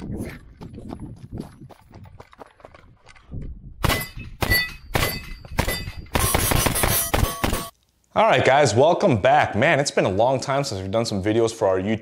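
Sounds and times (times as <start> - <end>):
footsteps on gravel: 0.0 - 3.6
gunshots: 3.8 - 7.7
metallic ring of steel targets: 3.8 - 7.7.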